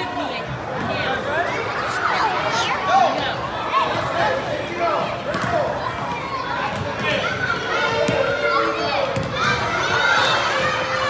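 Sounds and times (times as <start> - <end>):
basketball bouncing on hardwood: 9.2 - 9.4.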